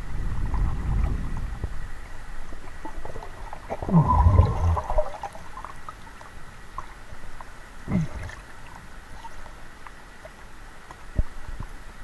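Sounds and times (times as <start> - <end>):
faint clicks and bubbling: 0.3 - 11.8
muffled underwater gurgling: 2.6 - 6.0, 7.8 - 9.6.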